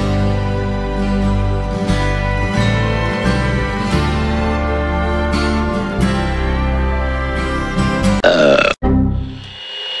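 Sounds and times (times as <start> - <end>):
loud wavering burp: 8.2 - 8.8
thin high tone: 9.2 - 10.0.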